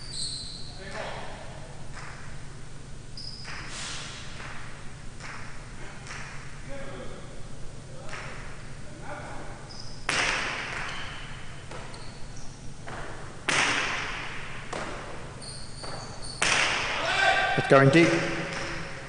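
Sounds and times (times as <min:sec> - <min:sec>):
high squeaks: 0:00.0 - 0:00.9, 0:10.9 - 0:12.6, 0:15.4 - 0:16.4
ball cracking off walls: 0:10.1 - 0:10.9, 0:12.8 - 0:15.2, 0:16.4 - 0:17.0.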